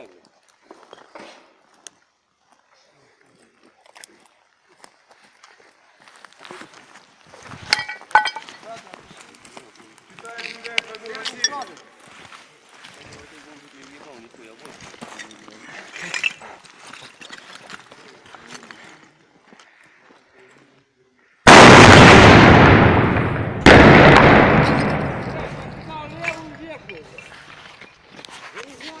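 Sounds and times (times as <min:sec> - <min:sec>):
very loud blast: 0:21.5 - 0:25.9.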